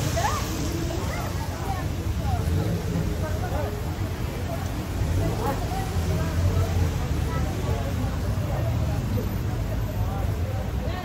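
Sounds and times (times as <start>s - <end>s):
chatter of passersby: 0.0s - 11.0s.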